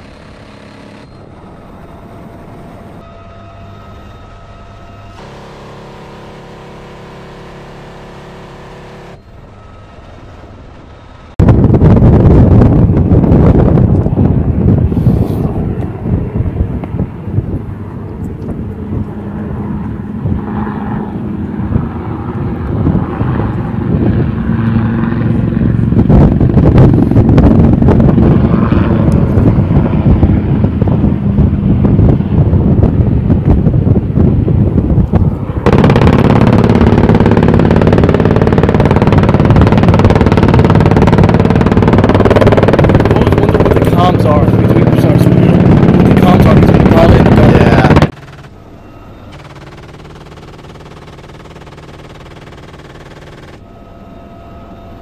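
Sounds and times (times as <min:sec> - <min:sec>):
helicopter in flight: 0:00.0 - 0:55.0.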